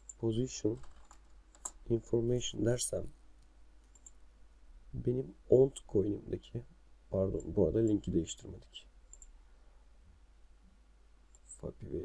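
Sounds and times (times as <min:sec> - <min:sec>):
low steady hum: 0:00.0 - 0:12.0
computer mouse click: 0:03.9 - 0:04.2, 0:09.1 - 0:09.4.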